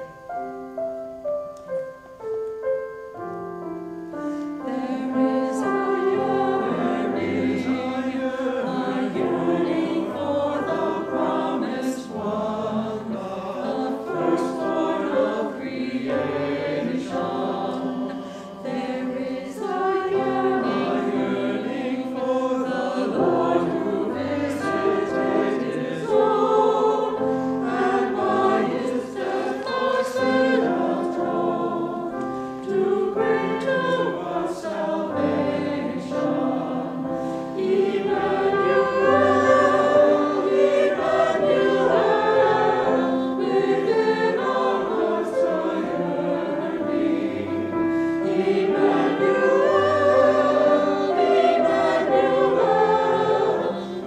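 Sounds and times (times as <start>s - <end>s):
mixed choir singing: 4.1s - 54.0s.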